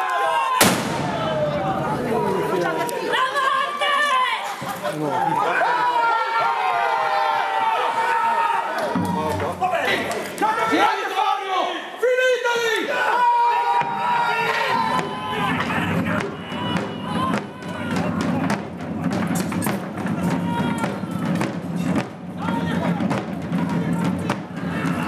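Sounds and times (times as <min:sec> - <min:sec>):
men shouting: 0:09.4 - 0:18.5
side drums rolling: 0:13.7 - 0:25.0.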